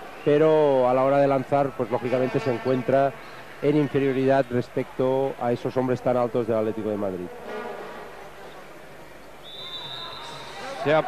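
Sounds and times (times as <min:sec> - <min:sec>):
faint crowd noise: 0:00.0 - 0:11.0
referee's whistle blast: 0:09.4 - 0:10.6.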